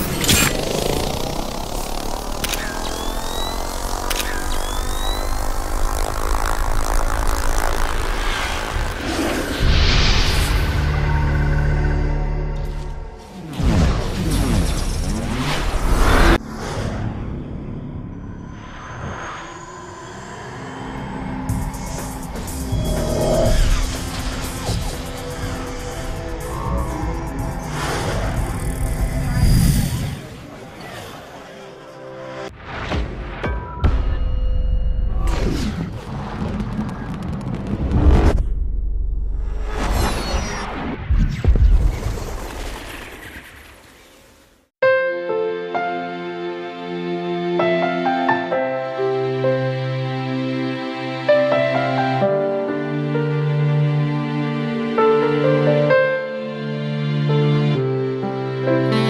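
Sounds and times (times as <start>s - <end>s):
sharp clicks: 0.0s - 5.8s
drone propellers humming: 0.0s - 10.0s, 19.4s - 30.7s
short rising chirp: 0.4s - 9.5s
music: 9.6s - 14.6s, 20.9s - 30.1s, 30.8s - 35.7s, 44.8s - 59.0s.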